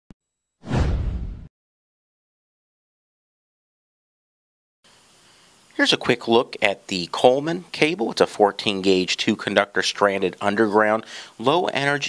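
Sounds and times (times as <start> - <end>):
whoosh with low rumble: 0.6 - 1.5.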